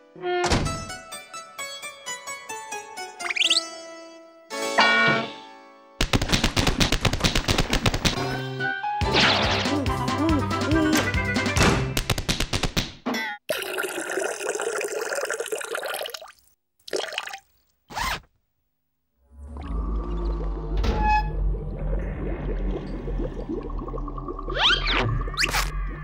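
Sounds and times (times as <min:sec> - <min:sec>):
cartoon sweeping effect: 0:03.2 - 0:03.8
cartoon music: 0:09.6 - 0:11.6.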